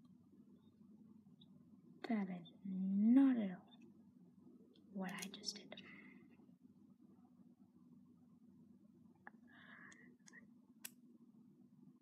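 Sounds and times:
small click: 9.9s - 11.0s.

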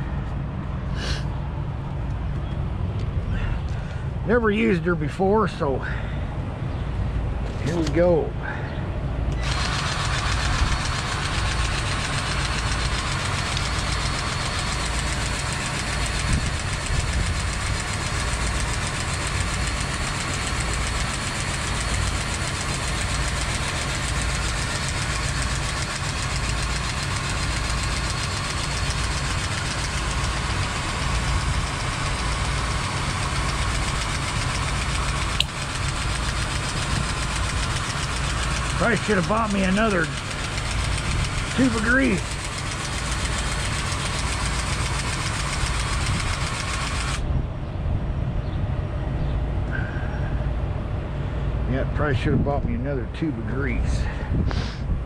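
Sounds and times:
grease gun motor whirring: 7.6s - 8.2s, 9.3s - 47.3s.

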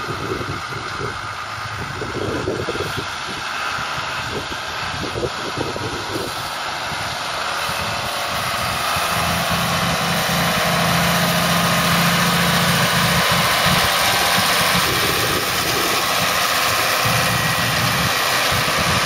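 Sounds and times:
baler mechanical noise: 0.0s - 19.0s
low hum: 0.0s - 19.0s
tractor diesel engine running: 0.0s - 19.0s.

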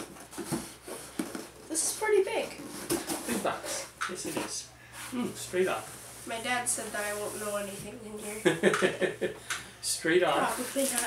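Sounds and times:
cardboard box scraping and rustling: 10.4s - 11.0s.

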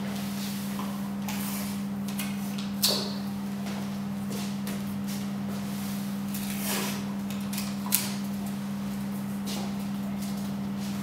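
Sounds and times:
projector fan humming: 0.0s - 11.0s.

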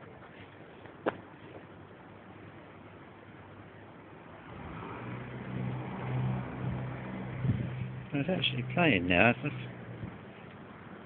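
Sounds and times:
low mechanical hum: 6.5s - 11.0s.

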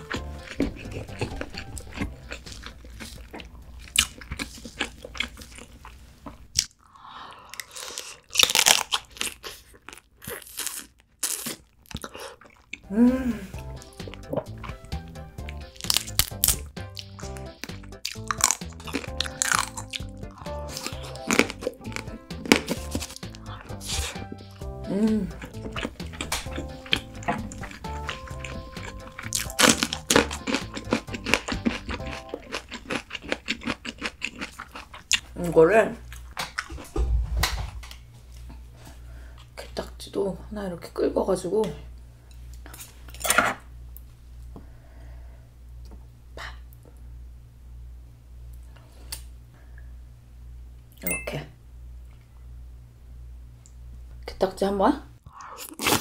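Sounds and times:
light background music: 0.0s - 3.9s, 12.8s - 33.0s
crunching and chewing: 0.0s - 12.9s, 13.8s - 38.6s, 55.2s - 56.0s.

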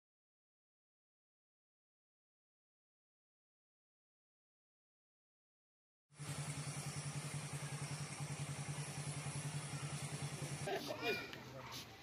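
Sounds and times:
engine idling: 6.1s - 11.8s.

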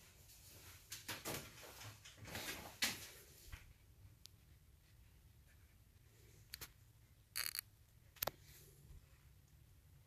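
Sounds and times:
faint low hum: 1.5s - 10.0s.

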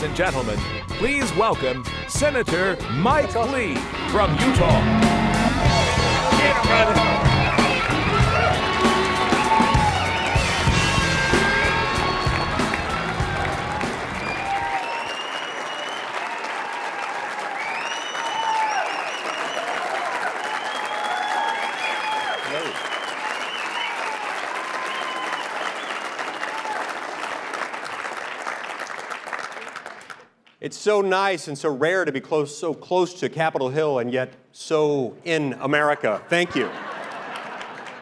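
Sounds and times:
walk-on music with heavy bass beat: 0.0s - 14.6s
audience applauding and cheering: 2.6s - 30.4s, 36.4s - 38.0s
crowd shouts: 4.3s - 22.7s.

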